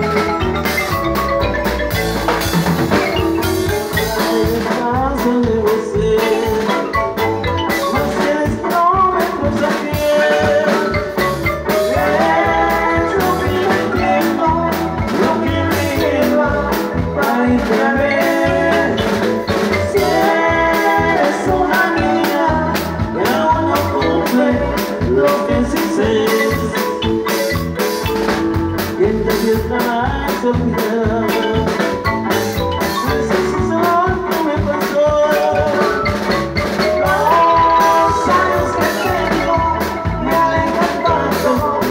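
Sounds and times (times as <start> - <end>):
marimbas struck with mallets: 0.0 - 41.9
steady drum beat: 0.0 - 41.9.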